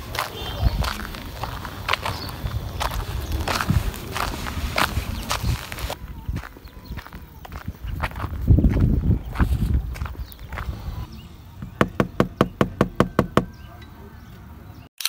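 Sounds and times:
footsteps on dirt road: 0.0 - 13.7
low rumbling on microphone: 0.0 - 13.8.

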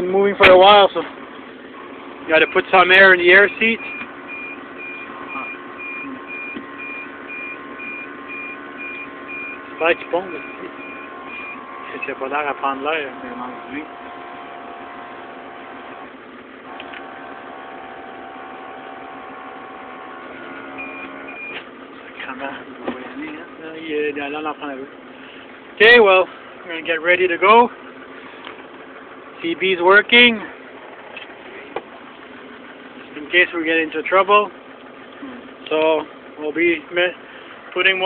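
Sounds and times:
tractor engine idling: 0.0 - 38.0.

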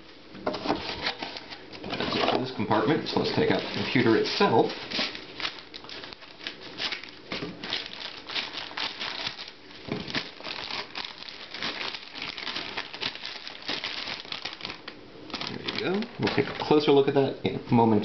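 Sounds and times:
plastic wrapping crinkling: 0.6 - 17.0.

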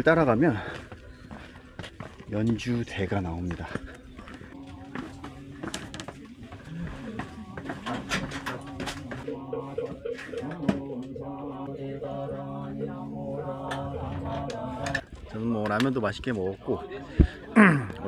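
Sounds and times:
man chanting in droning lines: 4.5 - 17.1.

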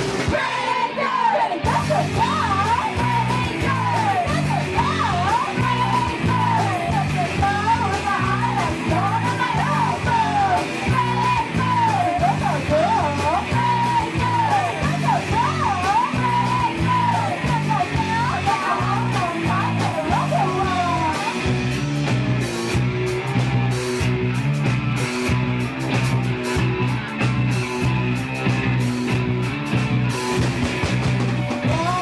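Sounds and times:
punk band playing: 0.0 - 32.0.

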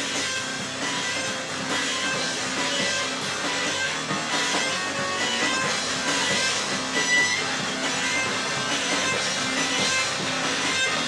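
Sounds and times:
electric guitar strumming: 0.0 - 11.0
live rock band playing: 0.0 - 11.0.

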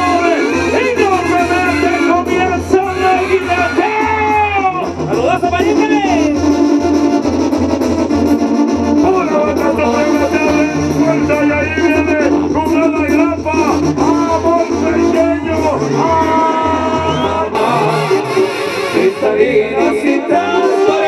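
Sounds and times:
brass band playing: 0.0 - 21.0.

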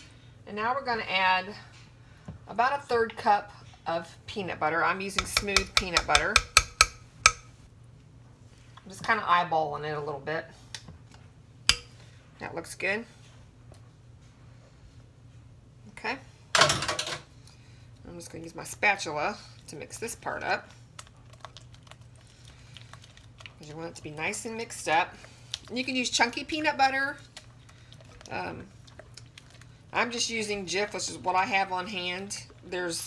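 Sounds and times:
spoon knocking ceramic bowl: 5.2 - 7.5.

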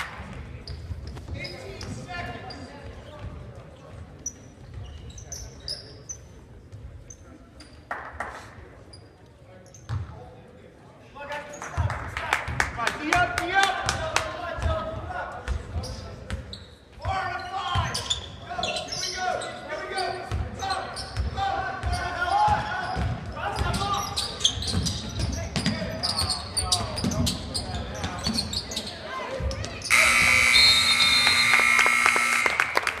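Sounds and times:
crowd voices and shouts: 24.8 - 33.0
scoreboard buzzer: 29.9 - 33.0.

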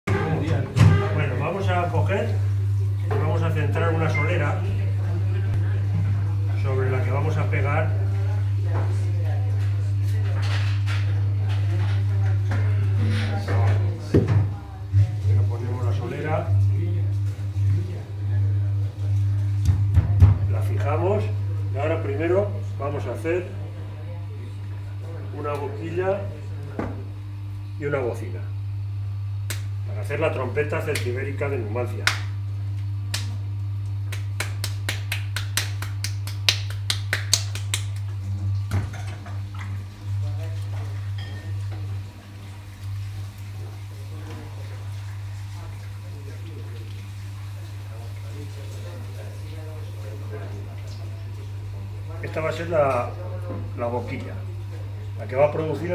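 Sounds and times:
potter's wheel motor humming: 0.1 - 55.9
hands slapping wet clay: 32.0 - 32.3, 33.1 - 33.4, 34.1 - 38.1.

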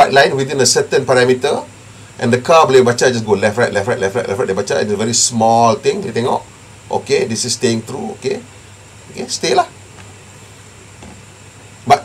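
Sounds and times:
man talking: 0.0 - 8.5, 9.1 - 9.8
room tone hiss with hum: 0.0 - 12.0.

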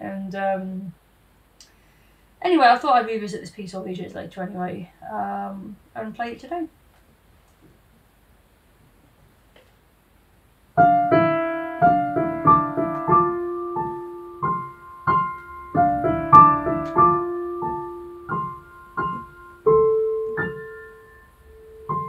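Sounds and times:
digital piano solo: 10.8 - 22.0.

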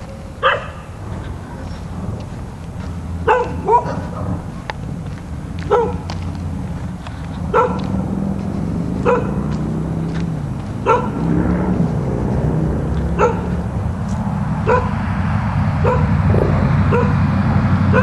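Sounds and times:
dog barking: 0.0 - 1.0, 3.2 - 4.5, 5.6 - 6.2, 7.5 - 8.0, 9.0 - 9.6, 10.8 - 11.3, 13.1 - 13.6, 14.6 - 15.0, 15.8 - 17.2
low rumble: 0.9 - 18.0.

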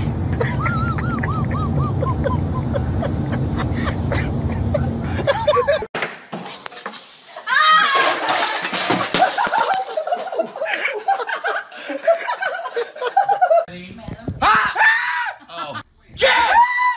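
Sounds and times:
car road and engine rumble: 0.0 - 5.9
excited voices shouting in hallway: 14.5 - 16.9.

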